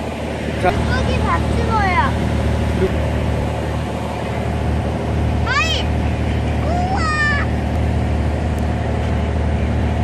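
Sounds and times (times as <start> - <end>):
boat engine idling: 0.0 - 10.0.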